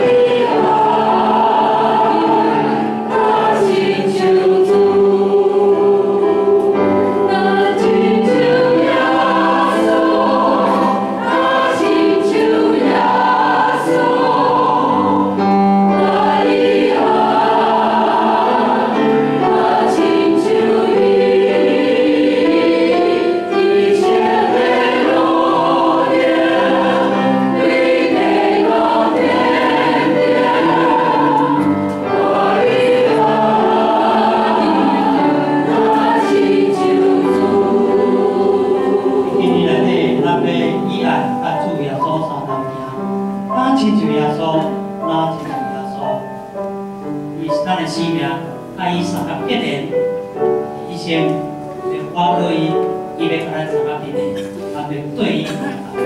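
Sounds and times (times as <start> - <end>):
mixed choir singing a hymn: 0.0 - 44.4, 48.8 - 56.0.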